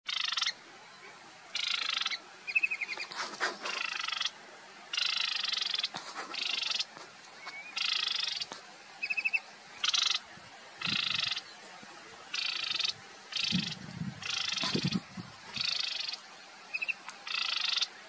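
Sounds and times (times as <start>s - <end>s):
rapid bird trills: 0.1s - 0.6s, 1.5s - 11.6s, 12.3s - 18.0s
bird singing harsh buzzy notes: 4.9s - 11.5s, 12.3s - 17.9s.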